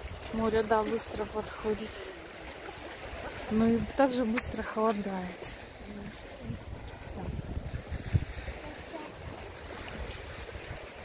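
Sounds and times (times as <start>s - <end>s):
wind buffeting microphone: 2.7s - 11.0s.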